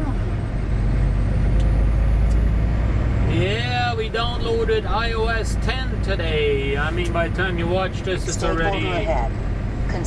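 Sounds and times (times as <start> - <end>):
diesel truck engine rumble: 0.0 - 10.0.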